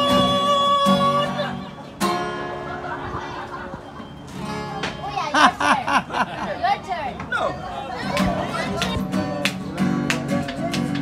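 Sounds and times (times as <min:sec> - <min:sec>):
people laughing: 0:01.2 - 0:04.3, 0:05.2 - 0:07.0
people chatting: 0:04.7 - 0:11.0.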